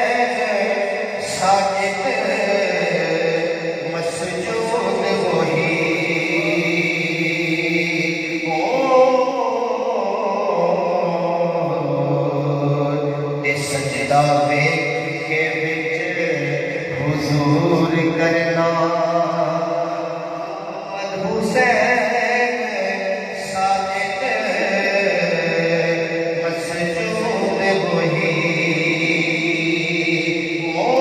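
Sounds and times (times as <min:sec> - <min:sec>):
man chanting into a microphone: 0:00.0 - 0:31.0.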